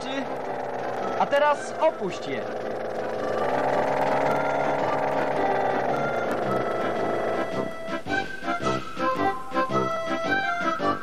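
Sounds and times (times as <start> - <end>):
background music: 0.0 - 11.0
forklift motor whine: 0.0 - 11.0.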